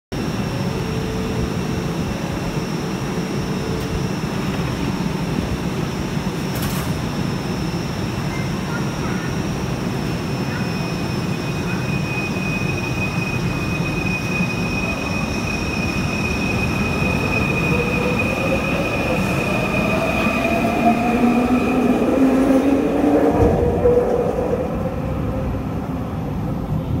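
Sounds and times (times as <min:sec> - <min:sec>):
train low rumble: 0:00.1 - 0:27.0.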